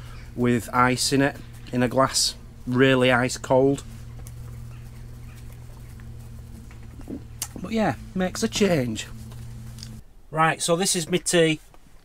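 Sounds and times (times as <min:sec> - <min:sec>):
steady low hum: 0:00.0 - 0:11.3.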